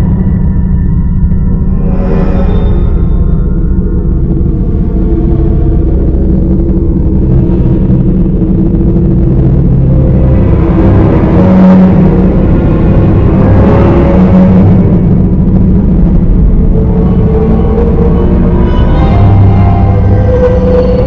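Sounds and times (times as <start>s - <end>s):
low rumbling horror drone: 0.0s - 21.0s.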